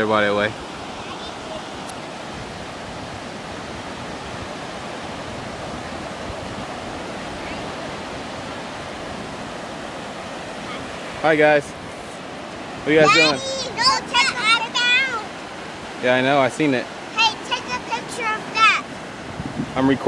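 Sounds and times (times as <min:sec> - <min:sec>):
small waves breaking on sand: 0:00.0 - 0:20.0.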